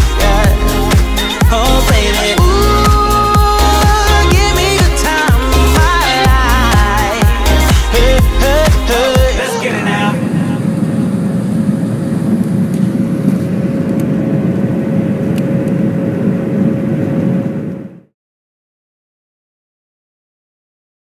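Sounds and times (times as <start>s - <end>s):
music track: 0.0s - 10.1s
airliner engine rumble: 0.0s - 18.1s
steady engine whine: 0.0s - 18.1s.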